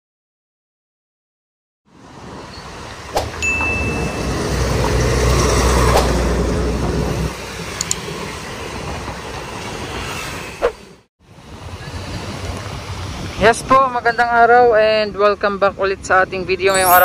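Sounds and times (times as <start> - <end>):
car traffic: 1.9 - 8.7
short high tone: 16.7 - 17.0.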